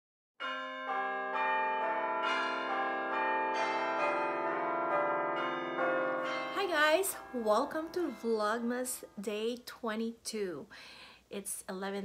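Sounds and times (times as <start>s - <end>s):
bells chiming: 0.4s - 9.2s.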